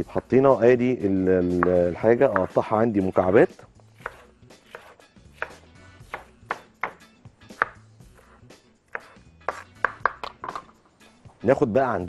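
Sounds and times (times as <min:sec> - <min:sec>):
knife chopping on wooden board: 0:01.5 - 0:02.6, 0:04.0 - 0:10.7.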